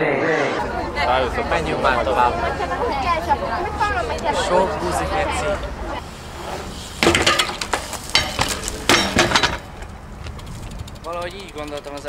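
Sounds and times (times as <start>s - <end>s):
bike clattering on stone: 0.6s - 12.0s.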